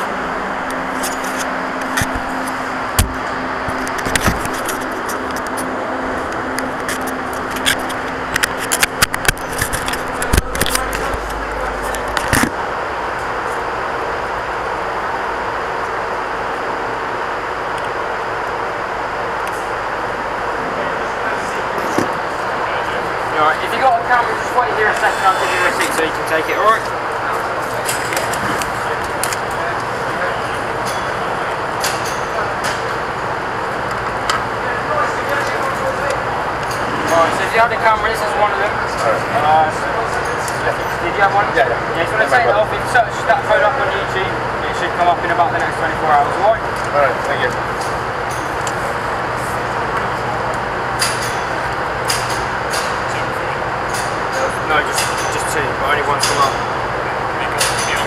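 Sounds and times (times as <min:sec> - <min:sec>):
indistinct voices: 0:00.0 - 0:14.6, 0:19.4 - 0:50.8.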